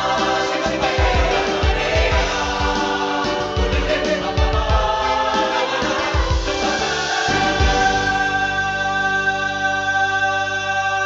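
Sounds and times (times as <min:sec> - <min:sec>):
steady beat: 0:00.0 - 0:08.3
voices singing: 0:00.0 - 0:11.0.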